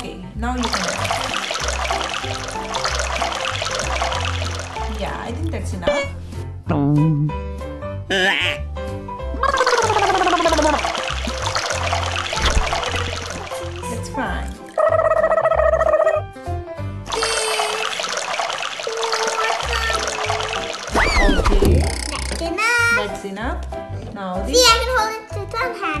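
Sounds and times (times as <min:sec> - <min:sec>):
water pouring into plastic cups: 0:00.6 - 0:05.6, 0:09.4 - 0:15.1, 0:17.1 - 0:22.4.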